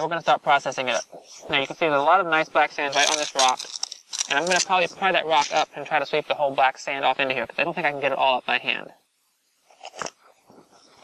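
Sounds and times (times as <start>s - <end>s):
rock scraping on gravel: 0.4s - 5.7s.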